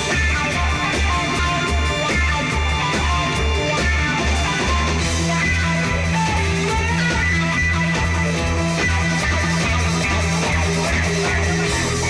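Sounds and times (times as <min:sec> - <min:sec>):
rock band music: 0:00.0 - 0:12.0.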